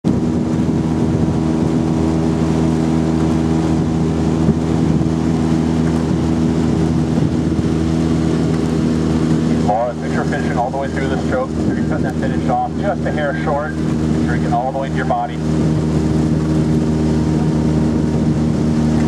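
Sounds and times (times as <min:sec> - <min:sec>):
outboard motor droning: 0:00.0 - 0:19.0.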